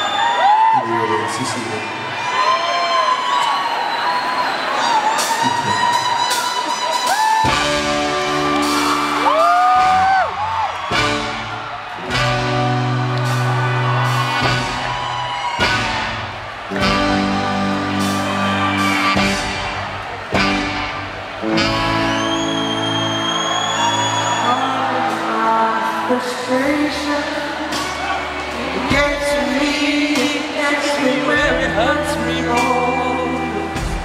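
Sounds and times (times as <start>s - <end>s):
live band playing slow chords: 4.9s - 34.0s
person singing: 24.3s - 34.0s.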